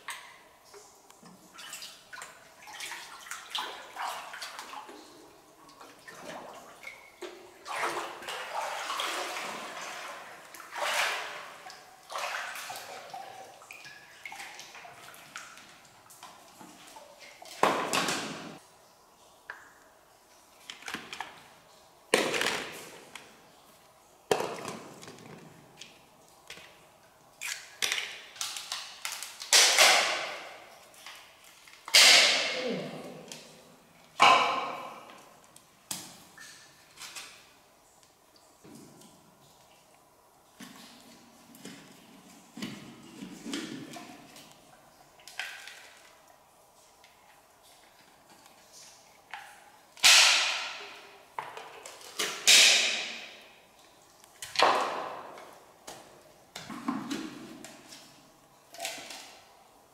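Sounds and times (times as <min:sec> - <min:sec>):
water sloshing and splashing: 0:00.0 - 0:59.8.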